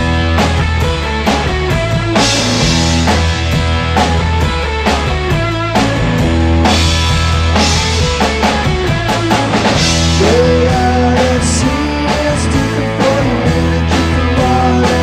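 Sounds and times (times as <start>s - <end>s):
bass guitar: 0.0s - 15.0s
drum kit: 0.0s - 15.0s
guitar: 0.0s - 15.0s.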